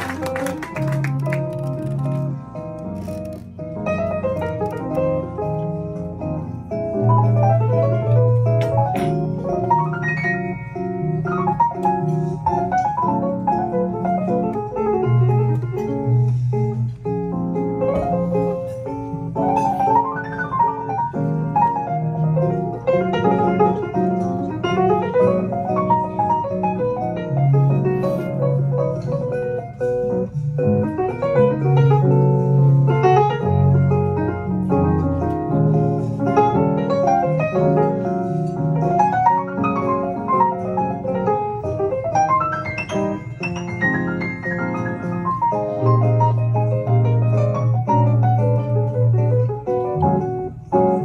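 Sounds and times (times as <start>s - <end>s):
jazz piano solo: 0.0s - 51.0s.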